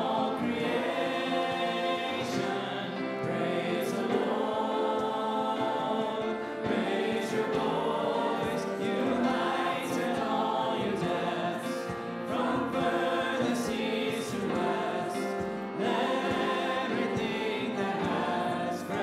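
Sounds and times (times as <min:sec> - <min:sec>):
band accompaniment: 0:00.0 - 0:19.0
congregation singing a hymn: 0:00.0 - 0:19.0.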